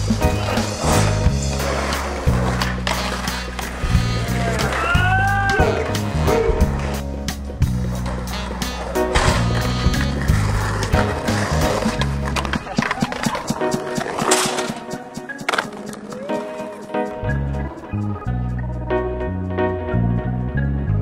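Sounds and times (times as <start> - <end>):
skateboard wheels rolling on concrete: 0.0 - 19.4
background music with looping bass: 0.0 - 21.0
skateboard tail pops and landings: 9.1 - 16.1.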